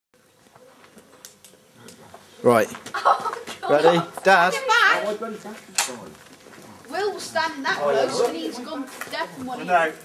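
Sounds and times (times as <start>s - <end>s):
voices: 1.8s - 10.0s.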